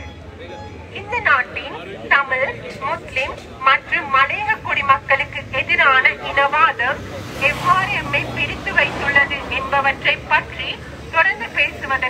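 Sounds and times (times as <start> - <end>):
woman speaking into a microphone: 0.9 - 12.0.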